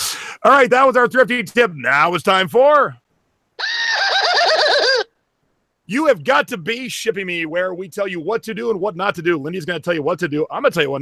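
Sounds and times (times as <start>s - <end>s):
high wavering cry effect: 3.6s - 5.1s.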